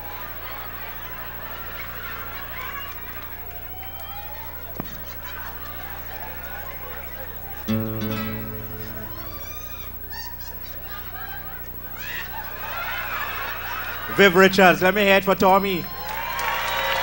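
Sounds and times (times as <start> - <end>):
acoustic guitar chord: 7.7 - 10.0.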